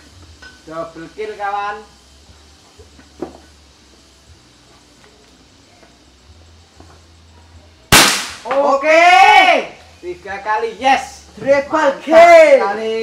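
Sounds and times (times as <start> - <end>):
air rifle shot: 7.9 - 8.6.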